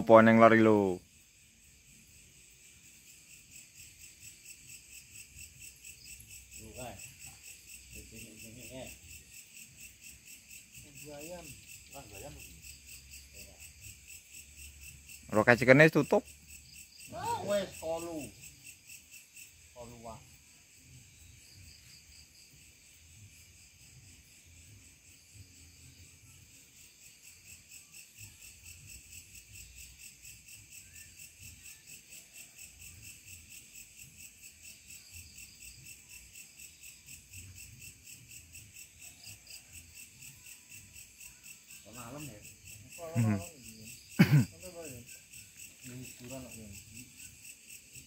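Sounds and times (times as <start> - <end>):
crickets chirping: 0.0 - 48.0.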